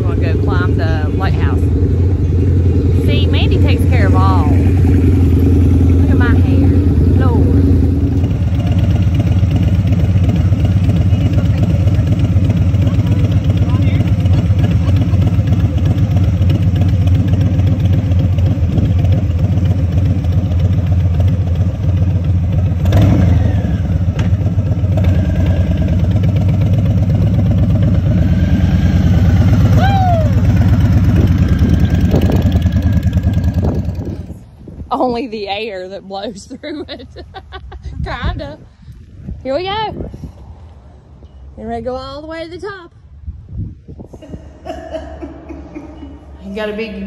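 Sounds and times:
motorcycle engine rumbling: 0.0 - 47.0.

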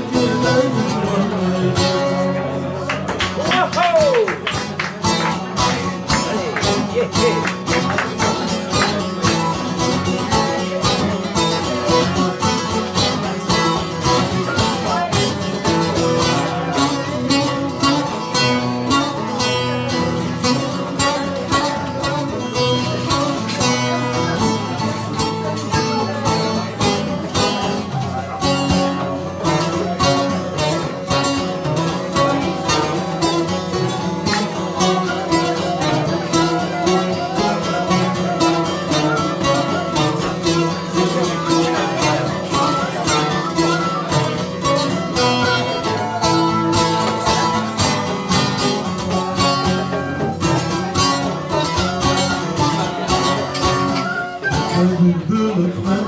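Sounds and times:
plucked long-necked lute: 0.0 - 56.0
flute: 32.1 - 55.2.

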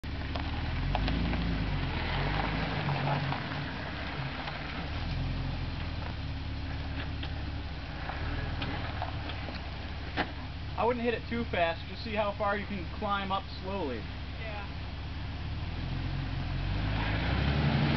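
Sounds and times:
car engine at low revs: 0.0 - 17.9
gravel clicking under tyres: 0.0 - 17.9.

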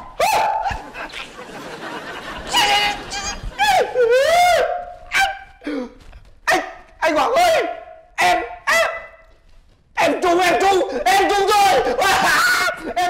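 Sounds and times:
man mock crying: 2.4 - 6.1, 10.4 - 13.0.

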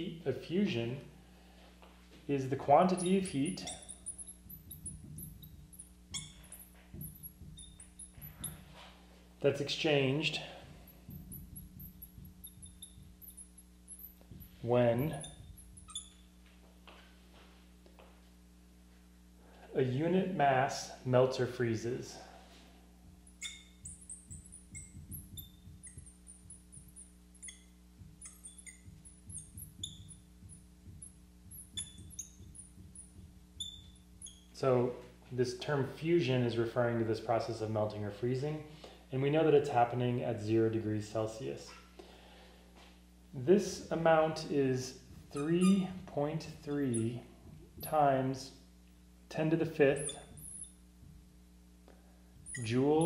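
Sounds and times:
faint low electrical hum: 0.0 - 53.0
marker squeaking on glass: 2.6 - 16.4, 23.0 - 34.6, 41.7 - 42.0, 43.8 - 48.2, 49.8 - 51.2, 52.3 - 53.0.

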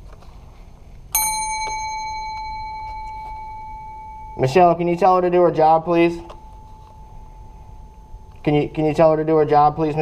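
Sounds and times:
service bell ringing: 1.1 - 10.0.

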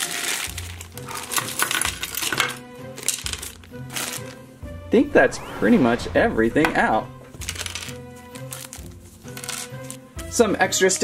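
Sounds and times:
light background music: 0.0 - 11.0.

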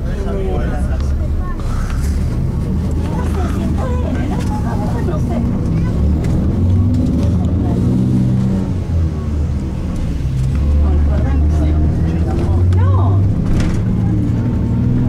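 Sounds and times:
bus engine drone: 0.0 - 15.0.

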